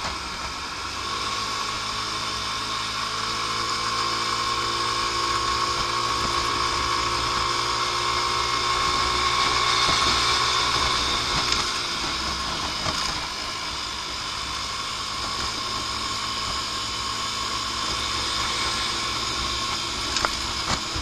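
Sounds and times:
road and wind noise: 0:00.0 - 0:21.0
scooter engine whining: 0:00.0 - 0:21.0.

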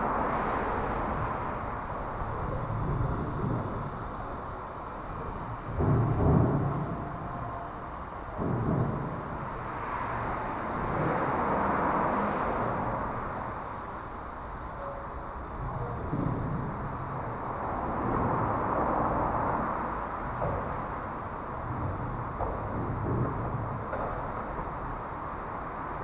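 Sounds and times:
low bumps: 0:00.0 - 0:26.0
traffic rumble overhead: 0:00.0 - 0:26.0.

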